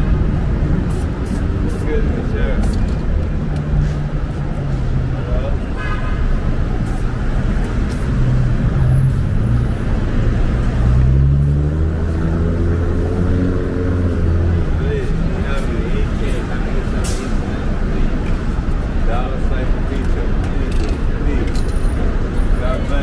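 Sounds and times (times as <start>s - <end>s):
traffic engines rumbling: 0.0s - 23.0s.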